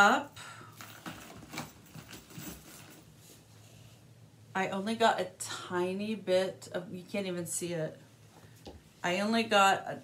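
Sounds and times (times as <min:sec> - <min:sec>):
low steady hum: 0:00.0 - 0:10.0
soft handling rustles and knocks: 0:00.7 - 0:04.1.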